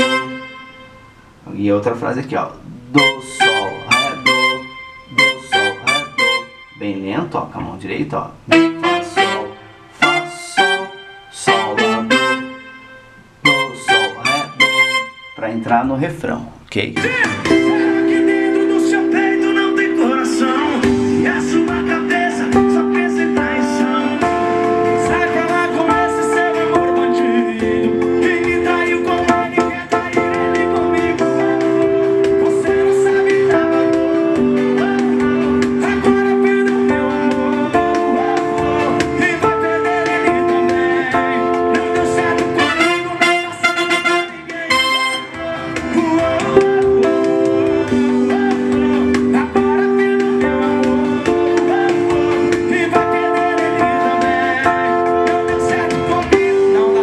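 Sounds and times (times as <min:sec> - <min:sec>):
keyboard playing chords: 0:00.0 - 0:01.8, 0:02.6 - 0:57.0.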